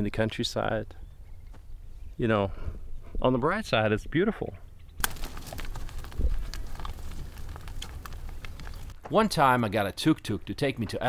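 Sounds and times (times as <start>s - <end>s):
light clicks and crackles: 4.8s - 9.0s.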